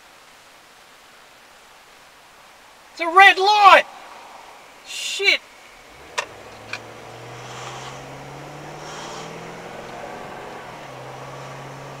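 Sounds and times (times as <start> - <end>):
faint traffic hiss: 0.0 - 12.0
car engine humming: 2.9 - 12.0.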